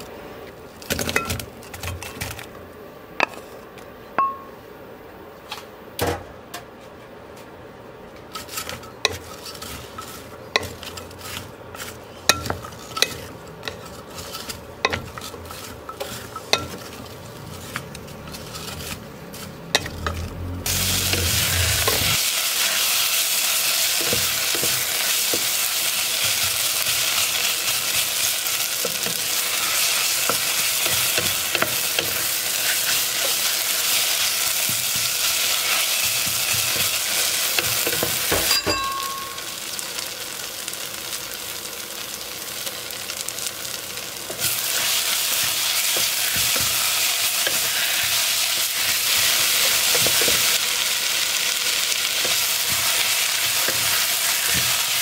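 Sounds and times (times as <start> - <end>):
spatula stirring and scraping: 8.2 - 38.6, 44.3 - 50.8, 51.6 - 55.0
onions sizzling in a pot: 8.2 - 55.0.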